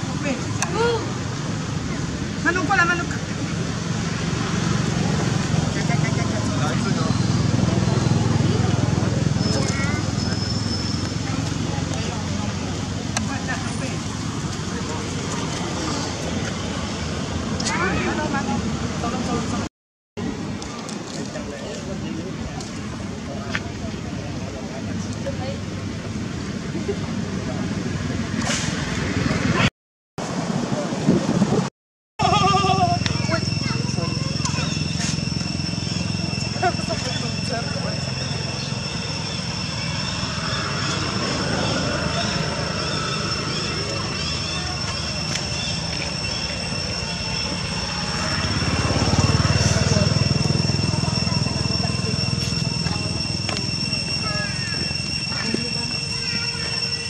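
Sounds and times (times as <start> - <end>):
monkey calls and squeaks: 32.2 - 48.6, 49.6 - 57.0
high-pitched drone: 32.2 - 57.0
short squeaky call: 51.1 - 57.0.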